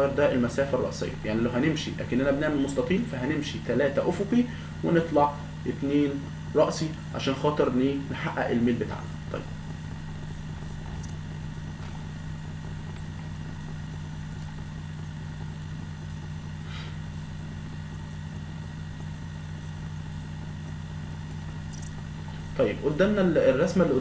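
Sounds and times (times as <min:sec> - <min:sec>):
steady low hum: 0:00.0 - 0:24.0
faint clicks: 0:14.3 - 0:14.5, 0:21.2 - 0:22.5.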